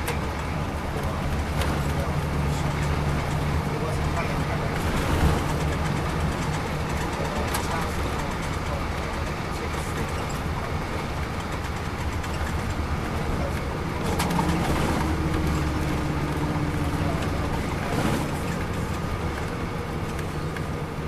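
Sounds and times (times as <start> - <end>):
diesel engine running: 0.0 - 21.0
road and tyre noise: 0.0 - 21.0.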